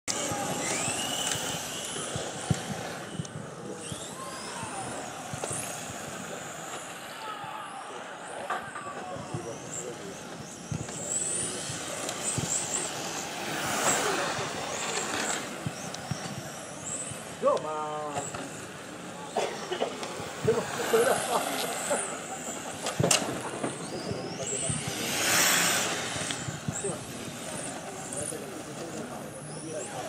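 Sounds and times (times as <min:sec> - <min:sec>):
electric motor whining: 0:00.1 - 0:06.7.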